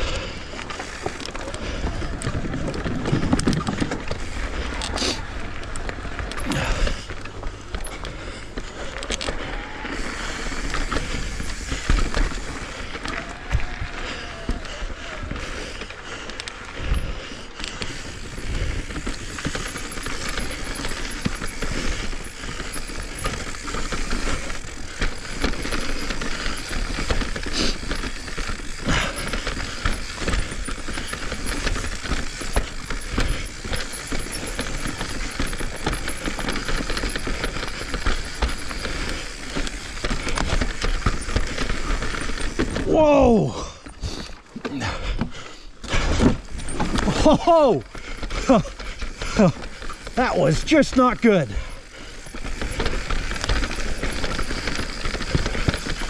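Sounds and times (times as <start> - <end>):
bike rattling: 0.0 - 56.0
bike tyre noise on dirt: 0.0 - 56.0.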